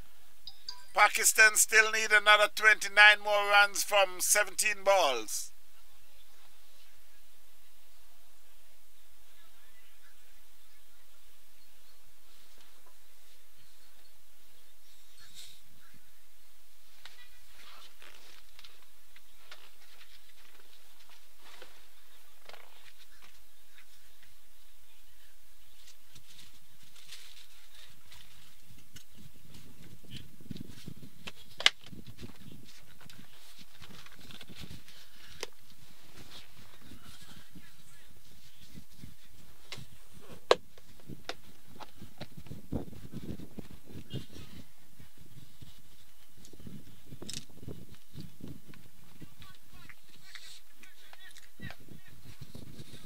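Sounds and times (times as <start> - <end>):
distant voices calling: 0.9 - 5.5.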